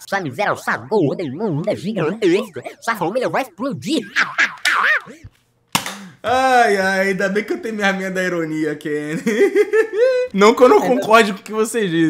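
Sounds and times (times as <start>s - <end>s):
man's voice: 0.0s - 4.4s, 10.3s - 12.0s.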